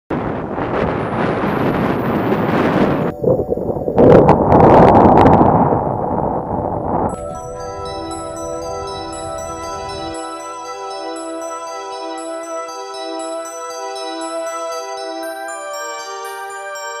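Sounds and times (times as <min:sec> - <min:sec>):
wind blowing on microphone: 0:00.1 - 0:10.4
soft music with mallet tones: 0:07.1 - 0:17.0.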